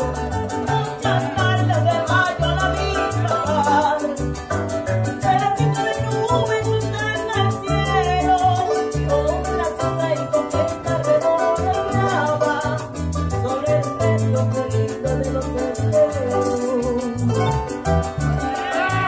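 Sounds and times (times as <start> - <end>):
acoustic guitar strumming: 0.0 - 19.0
electric bass: 0.0 - 19.0
shaker beat: 0.0 - 19.0
woman singing into a microphone: 0.0 - 19.0.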